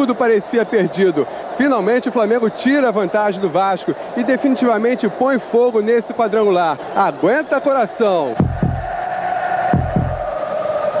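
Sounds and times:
steady background sound: 8.3 - 11.0
heartbeat thuds: 8.4 - 8.9, 9.8 - 10.2.

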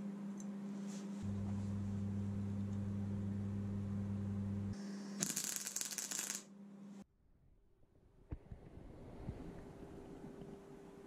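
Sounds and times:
arc welder humming: 1.2 - 6.5
welding arc crackling and sizzling: 5.2 - 6.5.

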